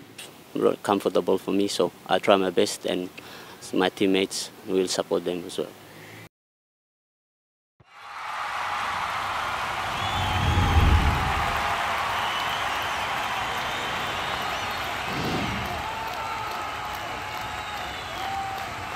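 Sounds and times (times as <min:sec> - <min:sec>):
crowd cheering and applauding: 0:07.8 - 0:18.9
high whistles: 0:09.8 - 0:16.1, 0:17.3 - 0:18.4
deep low boom: 0:10.1 - 0:11.7.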